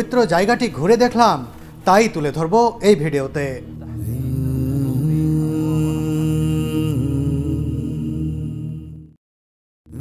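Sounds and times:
droning vocal chant: 3.6s - 9.2s.

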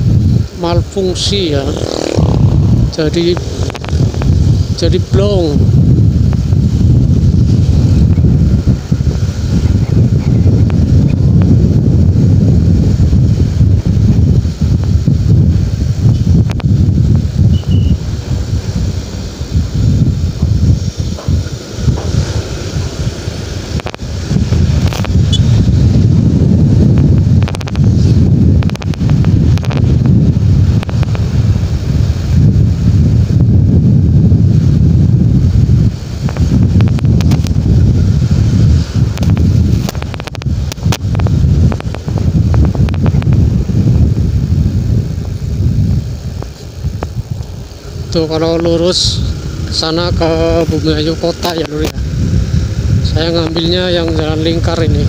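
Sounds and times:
road noise: 0.0s - 55.0s
wind buffeting microphone: 0.0s - 55.0s
motorcycle engine: 1.2s - 53.0s.

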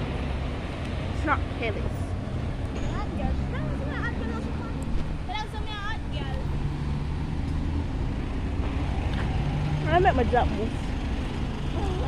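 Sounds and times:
cars driving slowly past: 0.0s - 12.0s.

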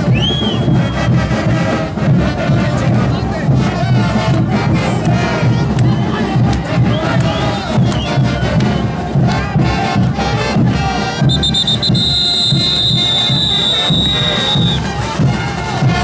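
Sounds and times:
festival band music with pulsing beat: 0.0s - 16.0s
group shouts and cries: 0.0s - 16.0s.

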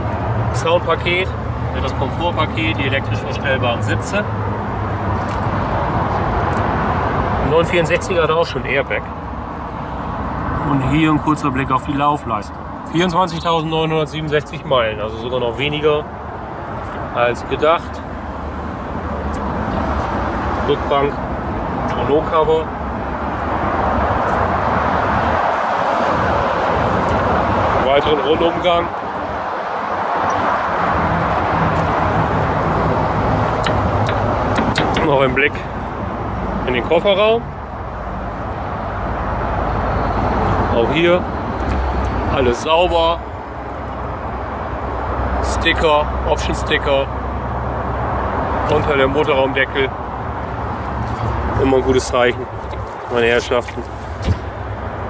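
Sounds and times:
road traffic noise: 0.0s - 55.0s
vehicle rushing noise: 16.2s - 45.4s, 49.8s - 55.0s.

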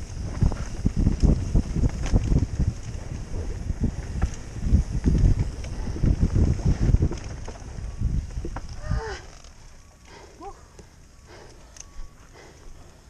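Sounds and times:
wind on microphone: 0.0s - 9.4s
bike tyres rumbling on dirt: 0.0s - 10.1s.

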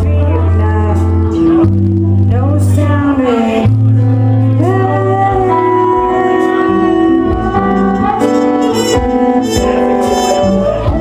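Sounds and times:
live pop band music: 0.0s - 11.0s
strummed acoustic guitar: 5.6s - 11.0s.

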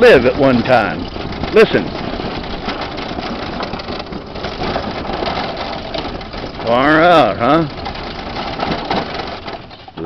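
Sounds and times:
wheelchair rattling over cobblestones: 0.0s - 10.0s.

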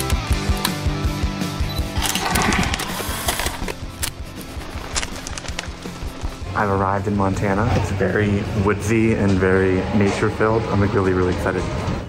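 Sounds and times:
background music with steady beat: 0.0s - 10.5s.

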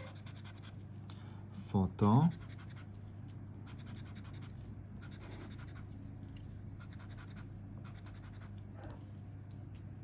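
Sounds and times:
scraper scratching lottery card: 0.0s - 0.8s, 2.1s - 3.0s, 3.6s - 6.0s, 6.8s - 8.6s
steady low hum: 0.0s - 10.0s.

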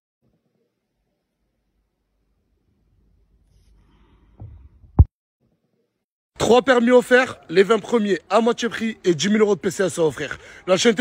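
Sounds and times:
dull low thuds: 4.4s - 5.1s.

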